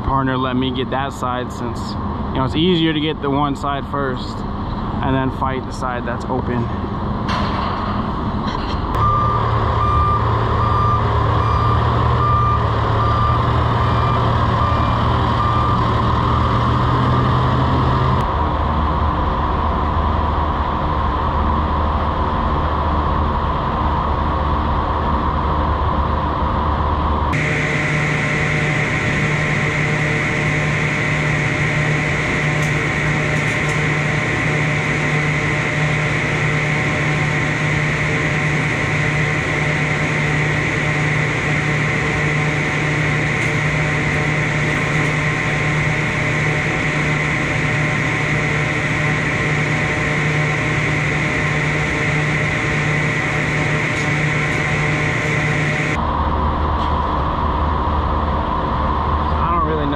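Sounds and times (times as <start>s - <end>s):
engine rumble: 0.0s - 59.9s
reversing alarm beeping: 8.9s - 18.1s, 27.3s - 56.0s.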